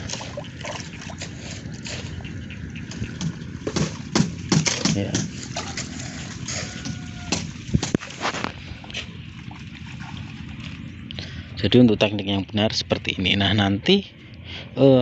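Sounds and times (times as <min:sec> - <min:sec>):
outdoor background noise: 0:00.0 - 0:15.0
knocks: 0:02.9 - 0:05.4.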